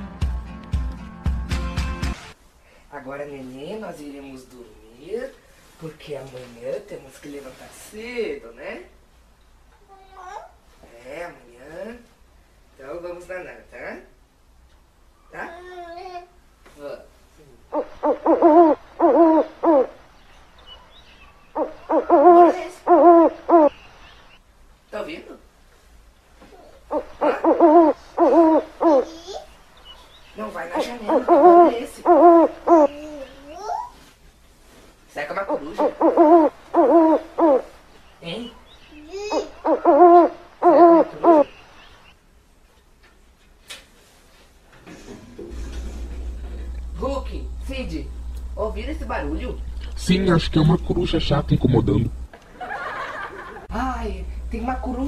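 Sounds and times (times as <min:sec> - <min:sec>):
owl hooting: 0:17.6 - 0:24.4, 0:26.8 - 0:29.1, 0:29.8 - 0:33.5, 0:35.3 - 0:42.2.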